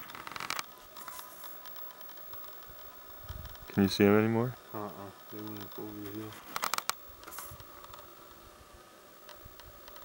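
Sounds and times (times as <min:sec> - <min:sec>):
faint steady whine: 0:00.0 - 0:10.0.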